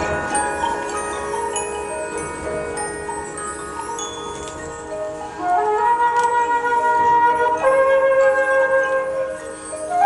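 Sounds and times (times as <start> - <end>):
marching band long held notes: 0.0 - 10.0.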